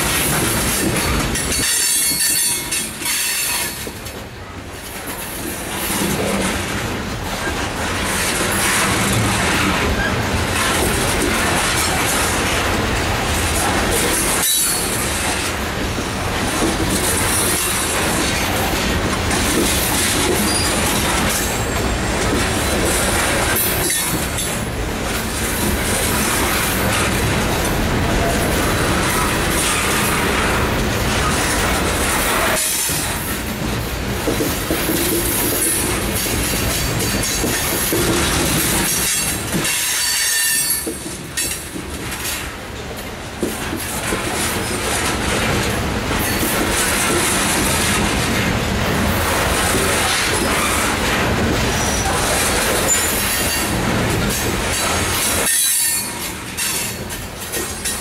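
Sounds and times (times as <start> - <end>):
freight train rolling past: 0.0 - 58.0.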